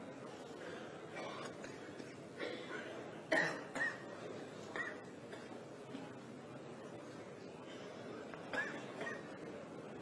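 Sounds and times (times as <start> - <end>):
person coughing: 2.4 - 4.1.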